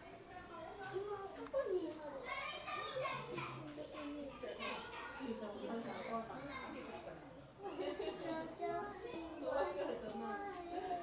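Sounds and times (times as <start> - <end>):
children's voices: 0.0 - 7.0, 7.6 - 11.0
people chattering and calling: 0.0 - 11.0.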